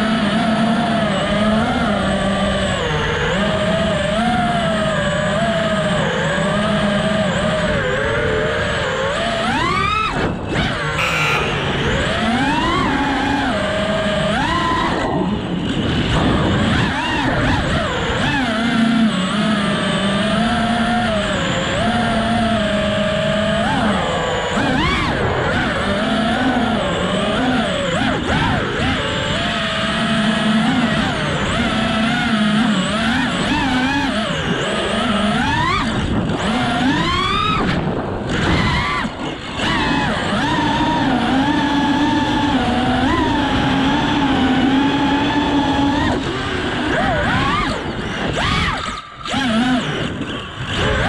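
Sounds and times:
drone motors whining: 0.0 - 51.0.

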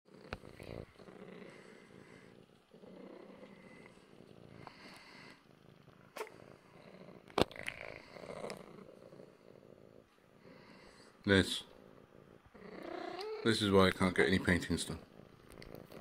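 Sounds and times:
cat purring: 0.1 - 16.0.

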